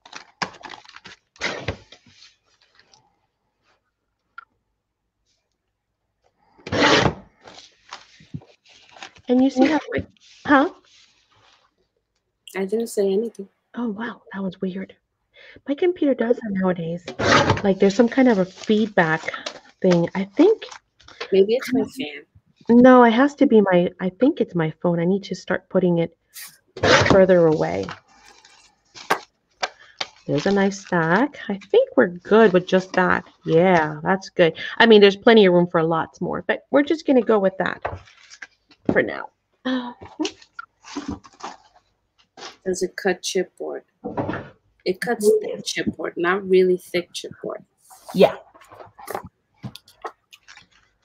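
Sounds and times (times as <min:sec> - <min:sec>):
paper rustling: 0:00.0 - 0:03.8, 0:06.6 - 0:11.8, 0:17.1 - 0:21.9, 0:26.4 - 0:31.3, 0:37.8 - 0:38.8, 0:40.2 - 0:42.6, 0:47.9 - 0:51.0.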